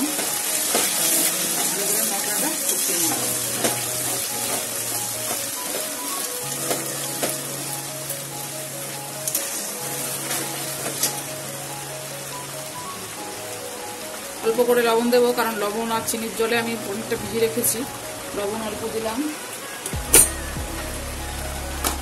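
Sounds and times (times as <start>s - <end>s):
oil sizzling: 0.0s - 22.0s
soft background music: 0.0s - 22.0s.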